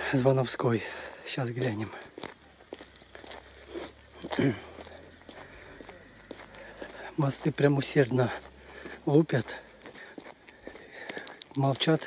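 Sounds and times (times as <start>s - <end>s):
footsteps walking: 1.4s - 12.0s
person speaking: 3.9s - 10.2s, 11.3s - 12.0s.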